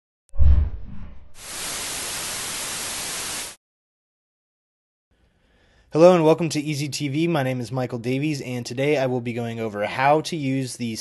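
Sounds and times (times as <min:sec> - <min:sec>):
static hiss: 0:01.4 - 0:03.6.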